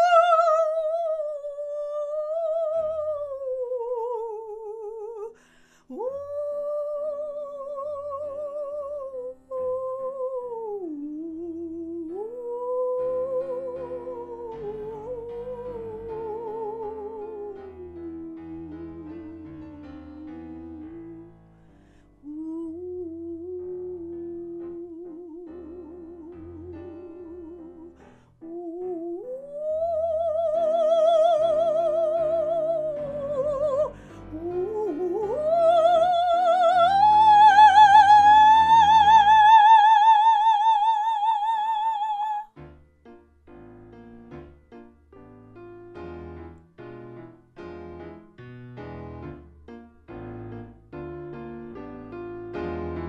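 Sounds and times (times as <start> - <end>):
woman singing with vibrato: 0.0 - 21.4, 22.2 - 42.6
soft piano accompaniment: 0.0 - 53.0.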